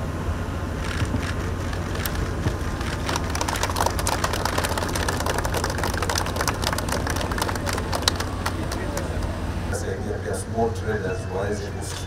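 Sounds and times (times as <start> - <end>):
steady low hum: 0.0 - 12.0
people applauding: 1.8 - 9.4.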